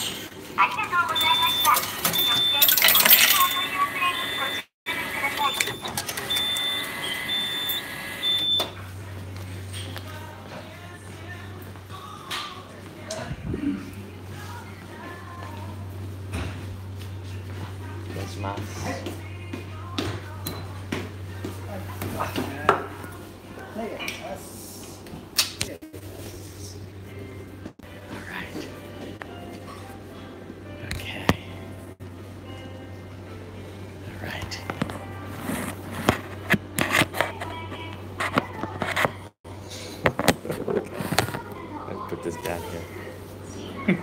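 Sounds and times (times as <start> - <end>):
restaurant background music: 6.0 - 23.8, 25.9 - 41.1.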